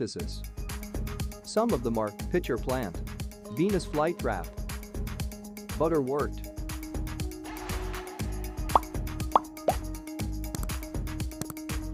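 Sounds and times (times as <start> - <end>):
background music with steady beat: 0.2 - 11.9
rising cartoon pop effects: 8.7 - 9.8.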